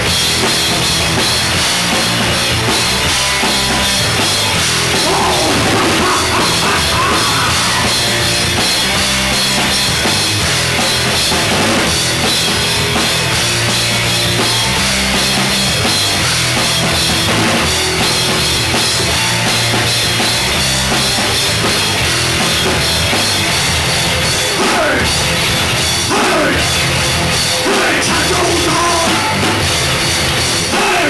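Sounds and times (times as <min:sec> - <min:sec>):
rock band playing: 0:00.0 - 0:31.0.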